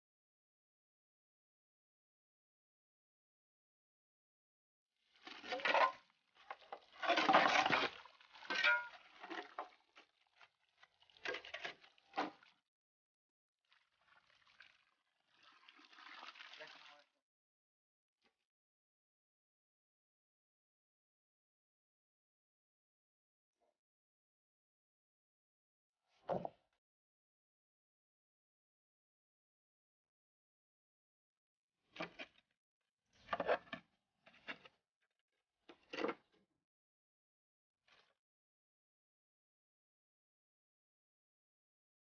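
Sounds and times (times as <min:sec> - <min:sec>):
water pouring and splashing: 0:05.0 - 0:12.7, 0:13.6 - 0:17.1
shovel stirring slurry: 0:05.2 - 0:12.6.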